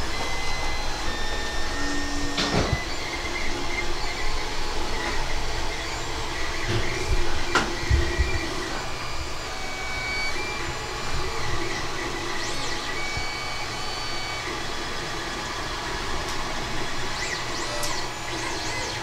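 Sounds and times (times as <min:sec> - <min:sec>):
printer fans whirring: 0:00.0 - 0:19.0
stepper motor whines: 0:00.0 - 0:19.0.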